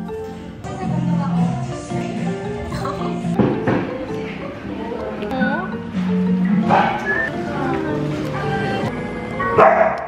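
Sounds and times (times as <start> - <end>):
background music: 0.0 - 10.0
dog barking: 6.6 - 7.3, 9.4 - 10.0.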